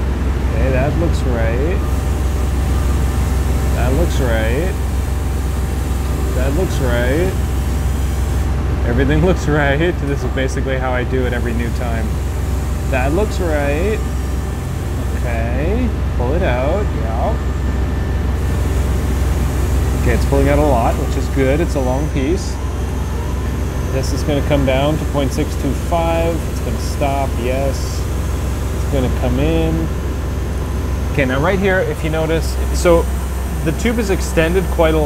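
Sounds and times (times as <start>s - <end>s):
lathe humming: 0.0s - 35.0s.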